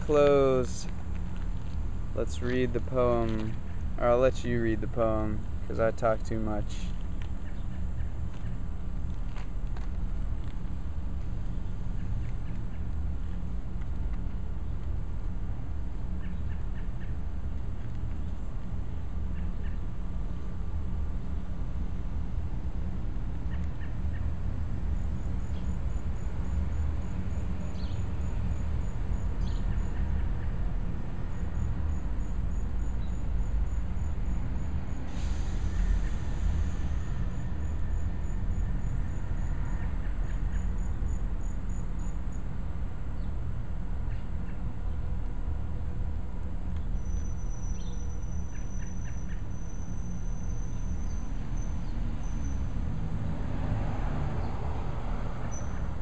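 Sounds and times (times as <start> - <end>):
low outdoor rumble: 0.0 - 56.0
insect chirping: 24.9 - 30.2, 31.1 - 42.5, 46.9 - 52.8
brief hiss: 35.1 - 37.0.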